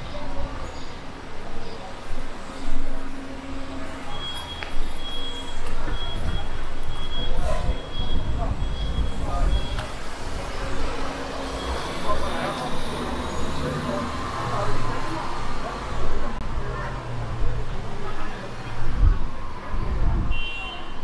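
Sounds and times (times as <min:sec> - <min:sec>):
vehicle engine rumbling: 0:00.0 - 0:20.4
passers-by talking: 0:00.0 - 0:21.0
high electronic beeps: 0:04.1 - 0:09.9, 0:11.4 - 0:13.7.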